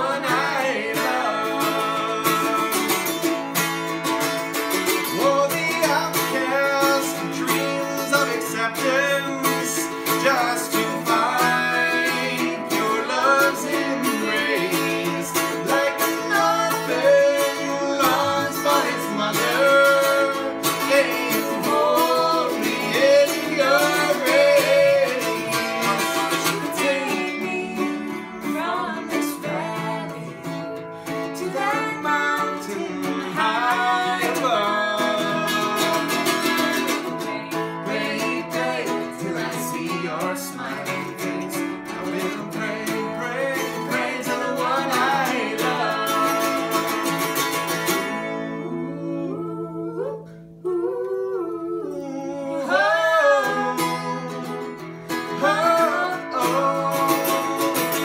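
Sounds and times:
man and woman singing duet: 0:00.0 - 0:03.4, 0:04.8 - 0:58.0
strummed mandolin: 0:00.0 - 0:49.7, 0:52.6 - 0:58.0.

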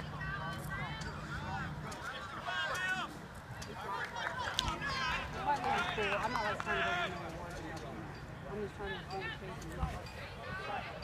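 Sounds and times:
distant voices shouting: 0:00.0 - 0:11.0.

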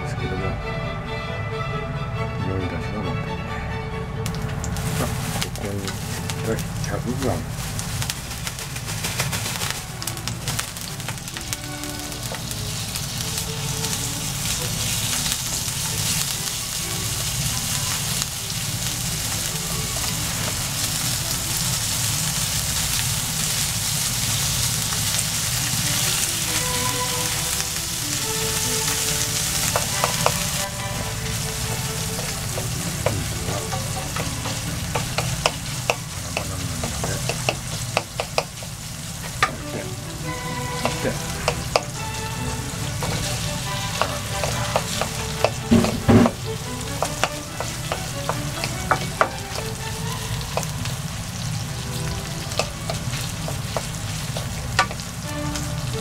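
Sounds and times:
meat sizzling in oil: 0:04.4 - 0:56.0
spatula knocking and scraping pan: 0:29.6 - 0:39.7, 0:40.7 - 0:42.0, 0:43.0 - 0:50.7, 0:52.5 - 0:55.1.

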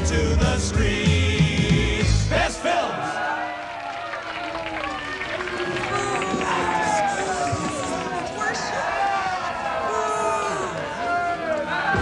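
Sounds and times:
crowd cheering and shouting: 0:02.1 - 0:12.0
applause: 0:03.3 - 0:12.0.

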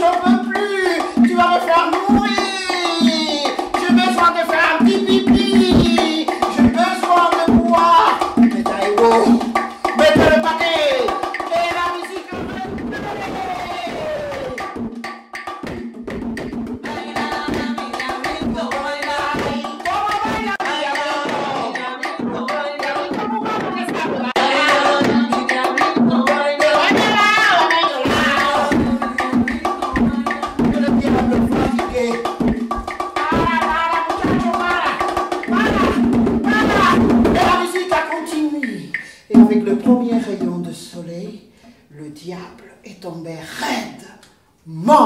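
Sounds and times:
person calling out: 0:00.0 - 0:14.6, 0:33.3 - 0:38.9, 0:43.2 - 0:45.0
bongos drumming: 0:00.0 - 0:41.2.

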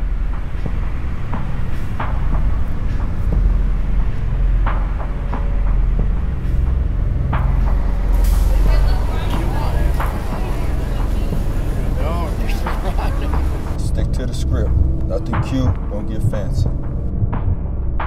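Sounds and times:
car engine rumbling: 0:00.0 - 0:17.0
street noise: 0:00.0 - 0:17.1
indistinct voices: 0:08.2 - 0:16.7.

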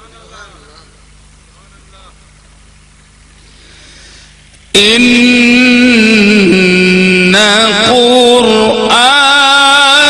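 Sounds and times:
faint hiss: 0:00.0 - 0:05.0
steady low hum: 0:00.0 - 0:10.0.

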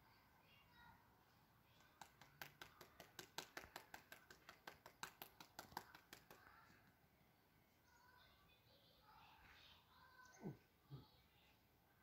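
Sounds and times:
rapid faint sharp clicks: 0:01.8 - 0:06.9.

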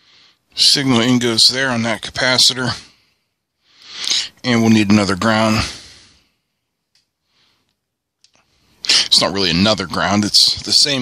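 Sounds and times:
man speaking: 0:00.5 - 0:03.0, 0:04.1 - 0:06.0, 0:08.8 - 0:11.0
faint clicks: 0:06.9 - 0:08.5.

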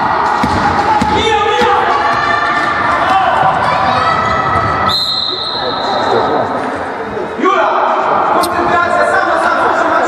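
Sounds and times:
voices in gym: 0:00.0 - 0:10.0
basketball bouncing on wooden court: 0:00.4 - 0:02.3
referee's whistle: 0:04.9 - 0:06.2.

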